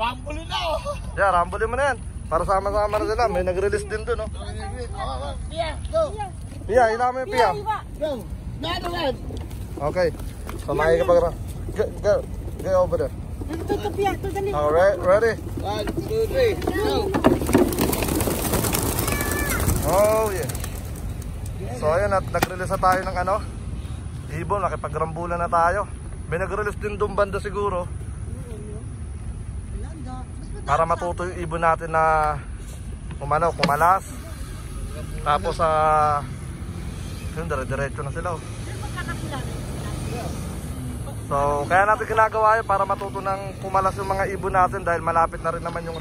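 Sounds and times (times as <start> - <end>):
highway traffic rumble: 0.0 - 46.0
pigeon wings flapping: 13.4 - 21.6.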